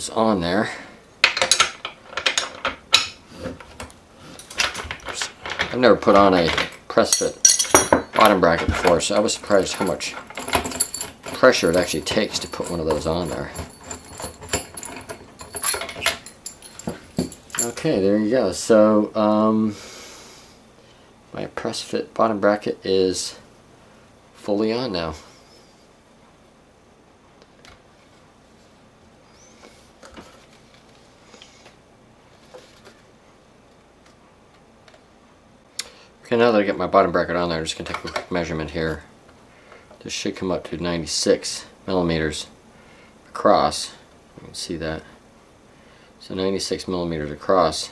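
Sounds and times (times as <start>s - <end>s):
metal clinking and scraping: 4.3s - 17.9s.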